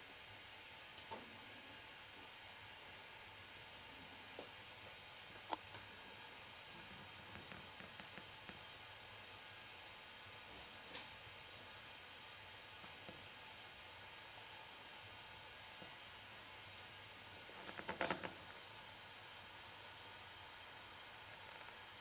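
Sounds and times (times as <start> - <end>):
faint steady hiss: 0.0 - 22.0.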